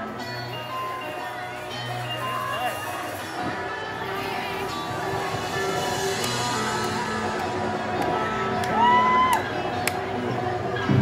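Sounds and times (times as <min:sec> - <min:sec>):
amplified electric guitar ringing: 0:00.0 - 0:09.8.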